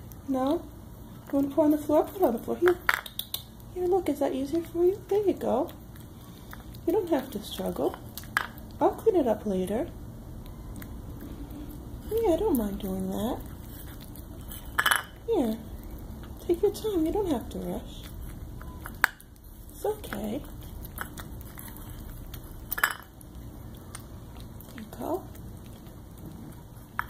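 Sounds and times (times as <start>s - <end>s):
cat chewing and licking: 0.0s - 27.0s.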